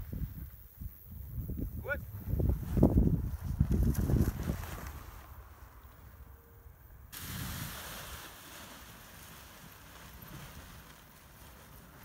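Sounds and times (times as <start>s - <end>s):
wind buffeting microphone: 0.0s - 5.2s
wind hiss: 6.8s - 12.0s.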